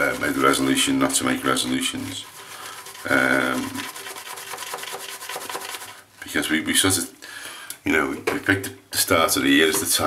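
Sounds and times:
shaving brush rubbing lather: 0.0 - 6.4.

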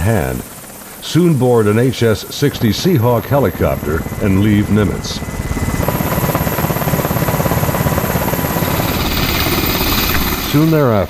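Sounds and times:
helicopter engine noise: 0.0 - 11.0
helicopter rotor blades beating: 0.0 - 11.0.

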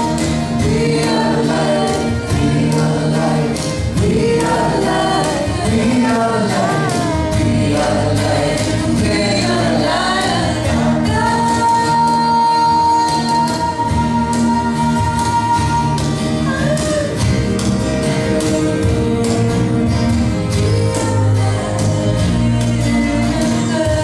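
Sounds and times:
strummed acoustic guitars: 0.0 - 24.0
woman singing: 0.0 - 24.0.

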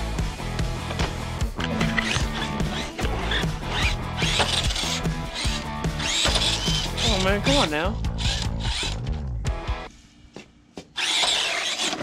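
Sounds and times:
electric motor whining: 1.6 - 9.0.

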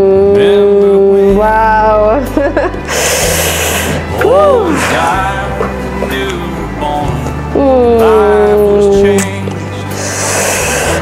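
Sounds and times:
quiet country song: 0.0 - 11.0
breathy rush of air: 2.8 - 5.2
woman's wordless vocal sound: 7.5 - 9.2.

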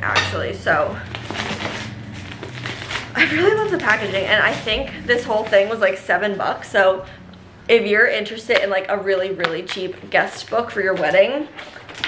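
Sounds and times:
packaging crackling rustle: 1.0 - 6.0, 9.5 - 12.0.

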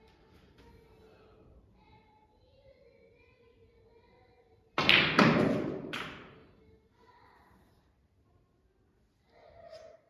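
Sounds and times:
ball dropping into pocket: 4.8 - 6.4
cue tip striking ball: 4.8 - 6.4.

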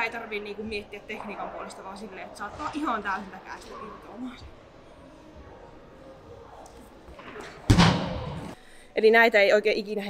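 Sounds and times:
heavy ball landing thud: 7.6 - 8.6.

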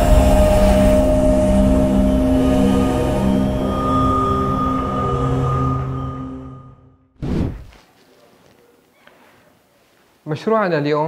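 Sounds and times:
held droning tones: 0.0 - 7.0.

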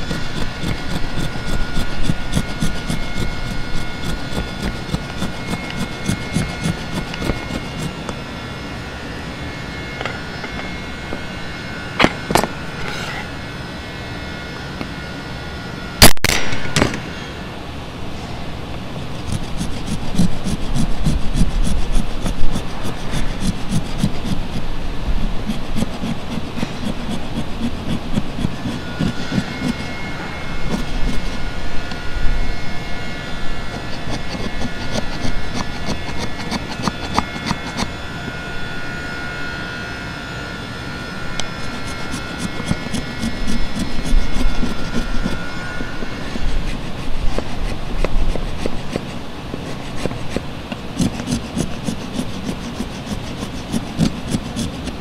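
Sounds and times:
faint steady high tone: 35.9 - 46.4.

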